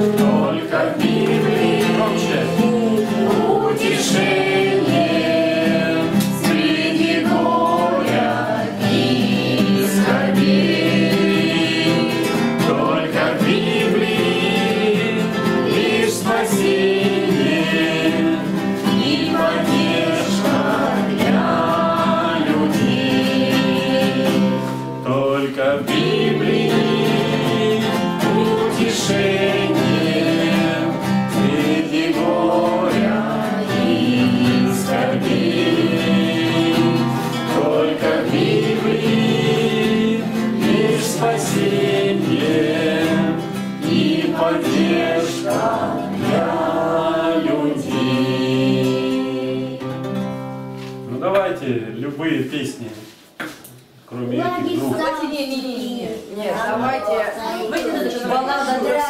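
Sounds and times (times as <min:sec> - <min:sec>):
people singing together: 0:00.0 - 0:51.1, 0:54.5 - 0:59.0
strummed acoustic guitar: 0:00.0 - 0:51.6.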